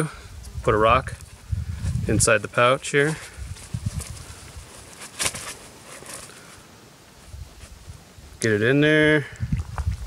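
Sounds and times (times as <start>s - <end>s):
fabric pouch rustling: 3.0s - 8.0s.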